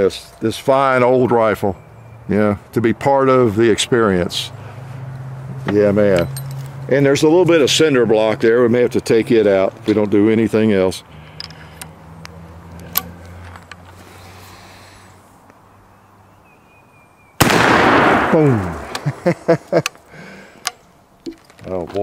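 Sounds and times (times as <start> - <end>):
loud rifle shot with echo: 17.4 - 19.2.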